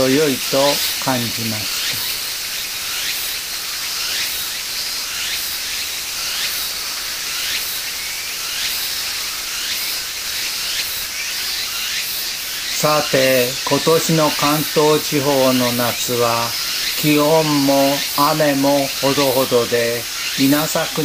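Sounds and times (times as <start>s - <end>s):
insects hissing: 0.0s - 21.0s.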